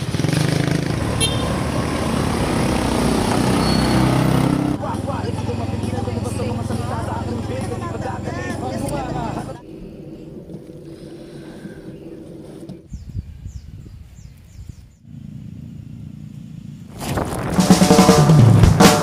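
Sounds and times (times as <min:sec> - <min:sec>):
low engine hum: 0:00.0 - 0:12.5, 0:14.9 - 0:18.8
outdoor voices talking: 0:04.6 - 0:12.9.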